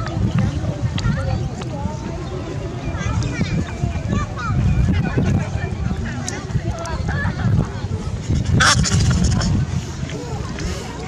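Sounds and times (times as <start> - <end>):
macaque call: 8.3 - 9.6.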